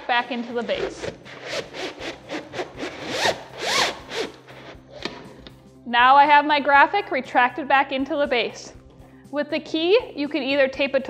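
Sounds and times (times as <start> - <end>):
banner rubbing swishes: 0.2 - 4.9.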